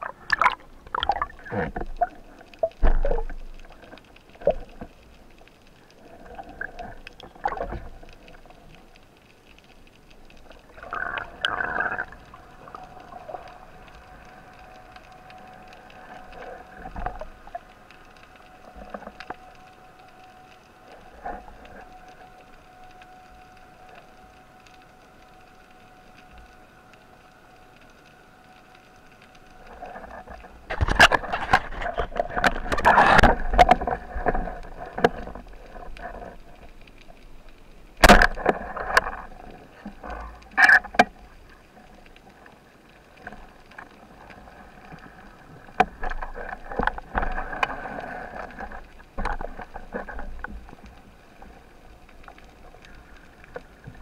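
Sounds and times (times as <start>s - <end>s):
underwater knocks and scrapes: 0.0s - 9.0s, 9.6s - 23.1s, 28.6s - 54.0s
crackling rush of water: 0.0s - 54.0s
faint steady hum: 0.0s - 54.0s.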